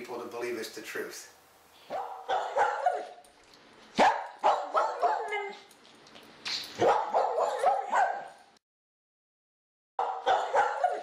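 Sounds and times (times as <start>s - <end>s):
dog barking and yipping: 1.9s - 3.3s, 3.9s - 5.7s, 6.6s - 8.5s, 10.0s - 11.0s.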